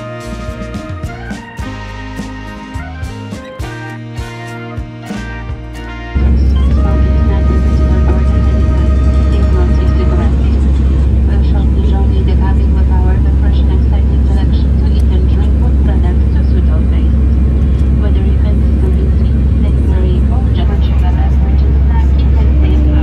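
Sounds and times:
steady low hum: 5.5s - 23.0s
jet engine cabin rumble: 5.8s - 23.0s
faint voices: 6.2s - 23.0s.

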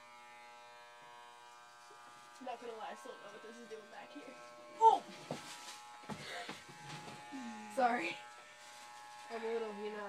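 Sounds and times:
electric hair clippers humming: 0.0s - 10.0s.

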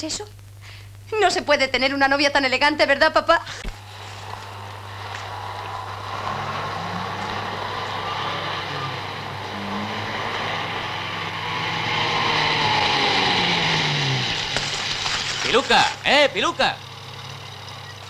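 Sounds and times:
steady low hum: 0.0s - 18.0s
car driving past: 3.8s - 16.0s.

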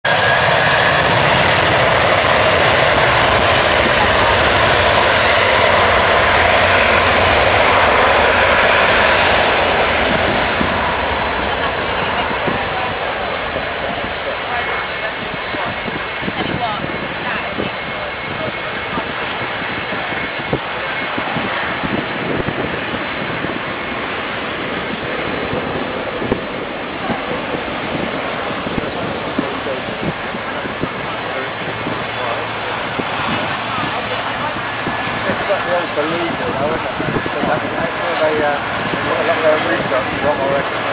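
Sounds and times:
jet engines at takeoff power: 0.0s - 40.9s.

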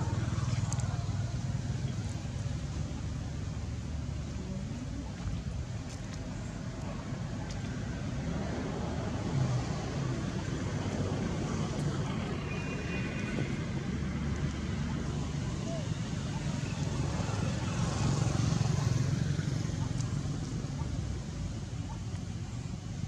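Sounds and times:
low outdoor rumble: 0.0s - 23.0s.

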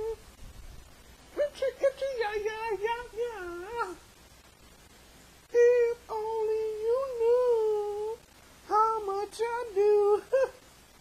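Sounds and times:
person singing wordless tune: 0.0s - 0.3s, 1.3s - 4.1s, 5.5s - 10.7s.

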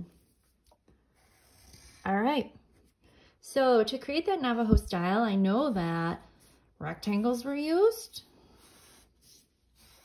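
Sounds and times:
crayon scratching on paper: 6.2s - 10.0s.

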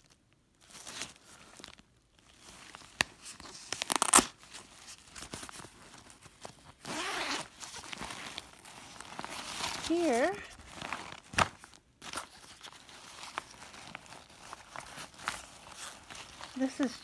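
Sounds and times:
nylon fabric rustling: 0.0s - 17.0s
zipper pulled open: 6.8s - 8.4s.

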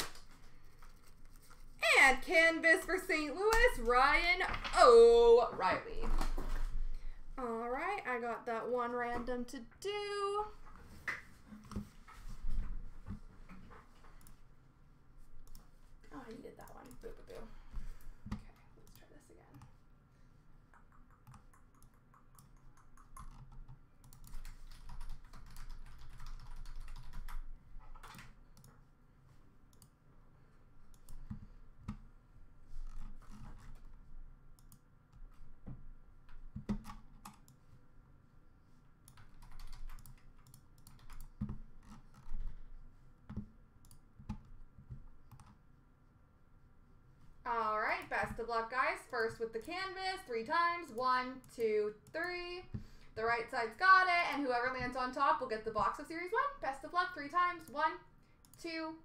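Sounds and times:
computer keyboard typing: 20.6s - 28.7s, 36.4s - 37.6s, 39.0s - 42.4s, 43.3s - 45.6s.

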